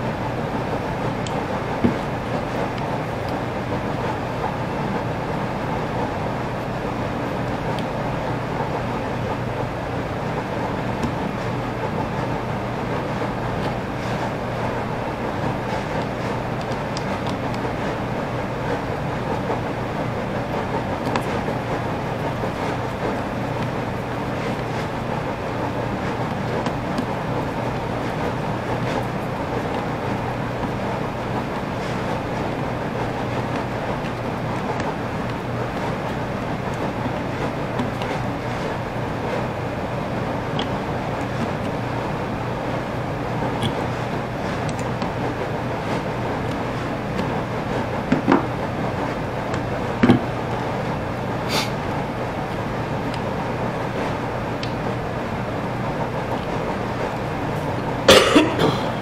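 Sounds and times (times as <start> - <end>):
mechanical rumble and hiss: 0.0 - 59.0.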